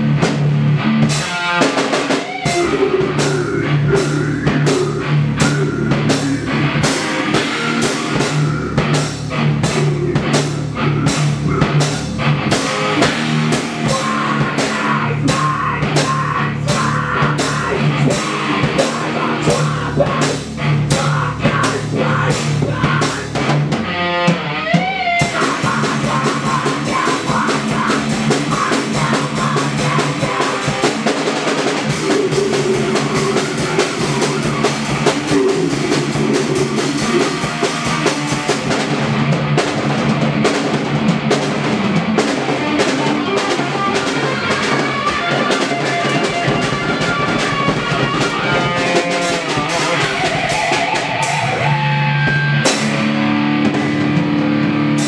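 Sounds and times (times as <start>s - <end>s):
drum and cymbal hits: 0.0s - 55.0s
electric guitar: 0.0s - 55.0s.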